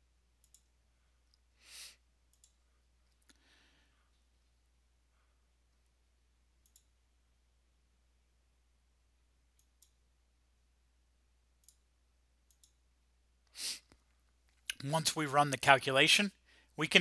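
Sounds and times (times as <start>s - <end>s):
computer mouse clicks: 0.4s - 0.7s, 2.3s - 3.4s, 6.6s - 7.0s, 11.6s - 11.8s, 12.5s - 12.8s
short breath: 1.6s - 2.0s, 3.3s - 4.2s, 16.4s - 16.8s.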